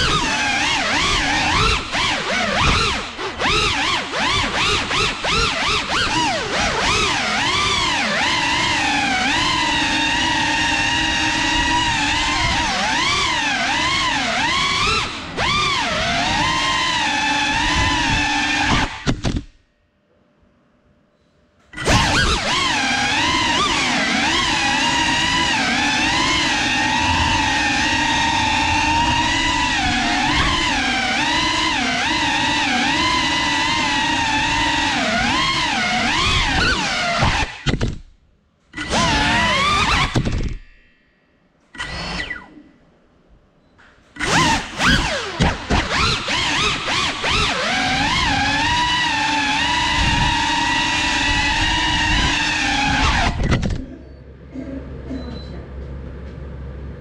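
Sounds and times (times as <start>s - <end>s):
drone motors whining: 0.0s - 19.6s, 21.6s - 38.1s, 38.7s - 41.0s, 41.7s - 42.8s, 44.1s - 56.4s.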